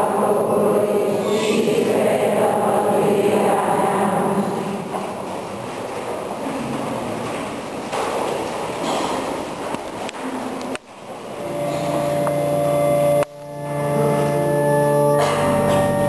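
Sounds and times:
noisy murmur: 0.0s - 16.0s
church organ chords: 11.4s - 16.0s.

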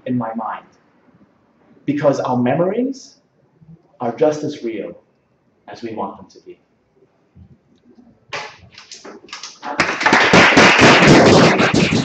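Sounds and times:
audience applauding: 8.8s - 12.0s.

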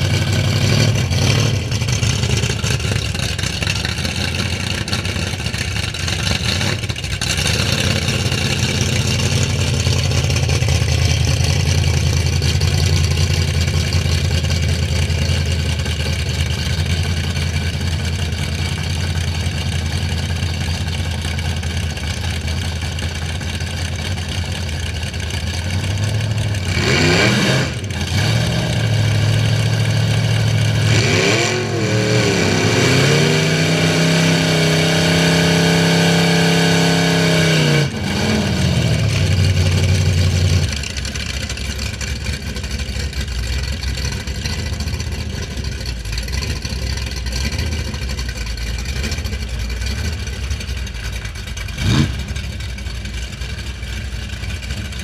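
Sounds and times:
truck engine idling and revving: 0.0s - 55.0s.

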